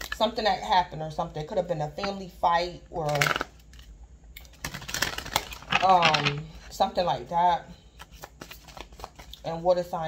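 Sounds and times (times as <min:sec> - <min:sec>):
cards being shuffled: 0:08.0 - 0:09.5.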